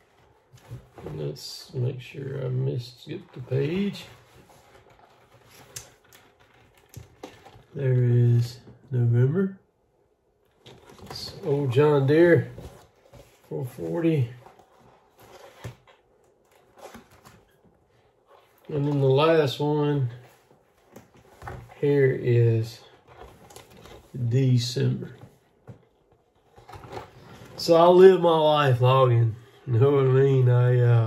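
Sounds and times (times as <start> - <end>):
paper calendar pages rustling: 0.0 - 8.7, 10.5 - 31.0
crisp paper rustle: 3.1 - 7.8, 20.0 - 28.3
paper calendar page turning: 3.1 - 8.4.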